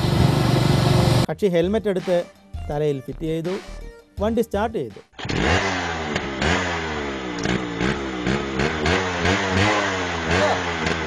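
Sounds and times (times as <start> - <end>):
motorcycle engine revving: 0.0 - 1.3, 5.2 - 11.0.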